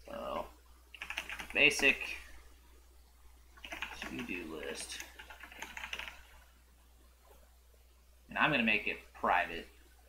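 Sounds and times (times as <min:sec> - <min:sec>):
computer keyboard typing: 0:01.0 - 0:01.9, 0:03.6 - 0:06.3.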